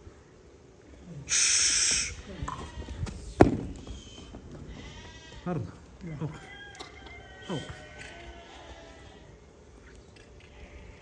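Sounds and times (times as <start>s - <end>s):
sheep bleating: 2.0s - 3.1s, 4.6s - 6.8s, 7.4s - 9.4s.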